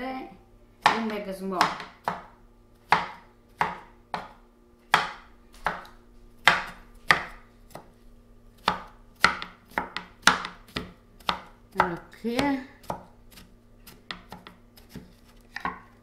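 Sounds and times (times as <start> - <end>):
knife chopping on wooden board: 0.8 - 7.9, 8.6 - 15.9.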